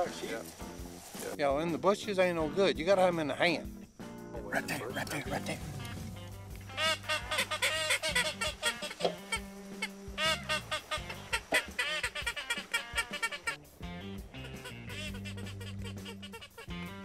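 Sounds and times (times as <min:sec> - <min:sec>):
background music with bass: 0:00.0 - 0:17.0
duck quacking: 0:05.0 - 0:17.0.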